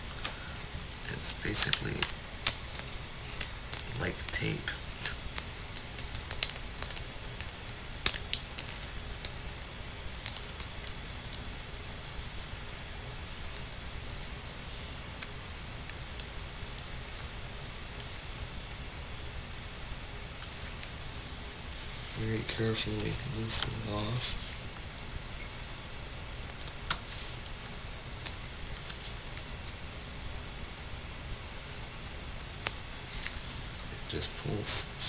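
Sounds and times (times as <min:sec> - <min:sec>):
faint hiss: 0:00.0 - 0:35.0.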